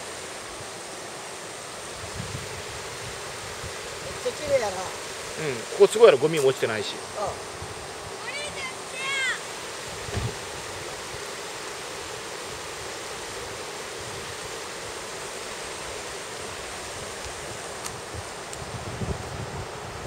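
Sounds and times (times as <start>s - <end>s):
river rushing over rocks: 0.0s - 18.6s
wind bumps on microphone: 2.0s - 4.2s, 9.9s - 10.5s, 18.0s - 20.0s.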